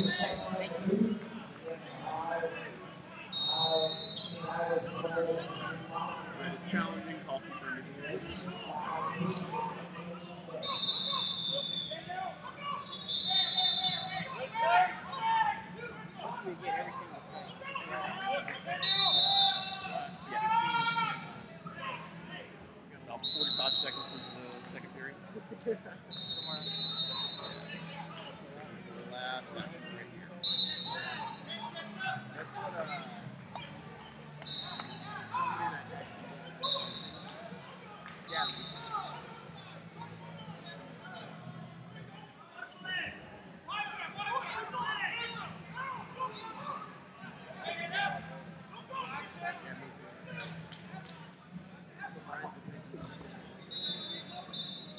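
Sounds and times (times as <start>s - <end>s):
referee's whistle blasts: 0.0s - 0.7s, 3.3s - 4.5s, 10.6s - 14.3s, 18.8s - 20.0s, 23.2s - 24.4s, 26.1s - 27.8s, 30.4s - 31.3s, 34.4s - 35.1s, 36.6s - 37.4s, 38.3s - 39.2s, 53.7s - 54.9s
voices echoing in sports hall: 0.0s - 54.9s.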